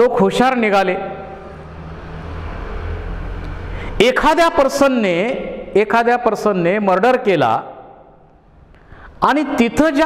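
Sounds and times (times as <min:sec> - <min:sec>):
low background rumble: 0:00.8 - 0:05.8.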